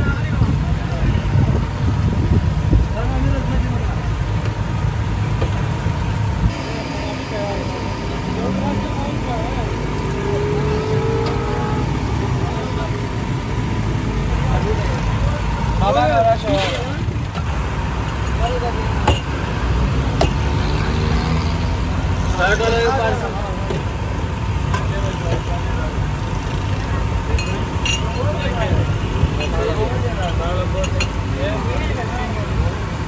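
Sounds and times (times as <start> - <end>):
people's voices: 0.0 - 33.0
road traffic rumble: 0.0 - 33.0.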